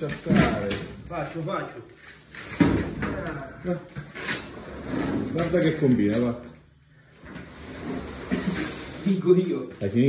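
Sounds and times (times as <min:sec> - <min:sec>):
man speaking: 0:00.0 - 0:01.9, 0:03.0 - 0:04.0, 0:05.3 - 0:06.6, 0:09.0 - 0:10.0.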